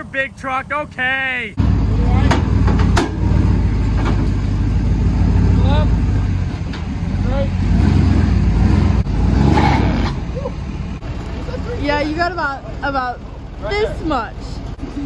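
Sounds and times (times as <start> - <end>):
pickup truck engine rumbling: 0.0 - 15.0.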